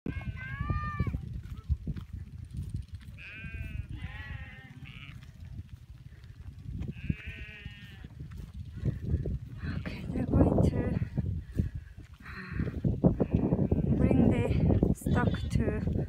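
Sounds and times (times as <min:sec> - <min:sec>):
goats and sheep bleating: 0:00.1 - 0:01.1, 0:03.0 - 0:05.5, 0:06.2 - 0:08.5, 0:13.1 - 0:15.9
steady low rumble: 0:00.1 - 0:16.0.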